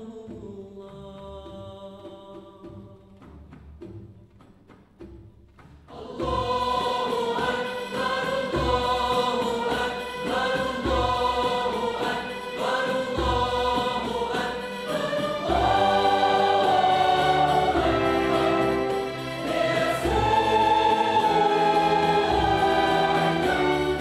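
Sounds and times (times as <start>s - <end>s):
choir singing: 5.9s - 24.0s
symphony orchestra: 6.4s - 24.0s.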